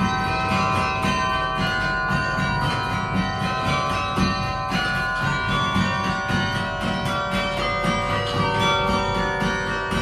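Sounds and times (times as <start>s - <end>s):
carillon bells playing: 0.0s - 10.0s.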